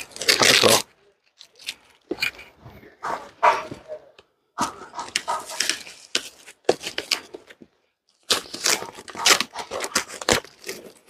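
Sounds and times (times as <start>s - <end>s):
packing tape ripping off cardboard: 0.0s - 1.8s, 8.2s - 11.0s
cardboard flaps scraping and rustling: 4.6s - 7.6s.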